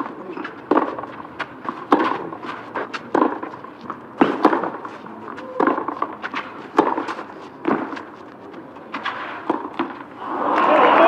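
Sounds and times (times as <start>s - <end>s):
tennis ball struck by racket: 0.0s - 8.2s, 8.9s - 10.1s.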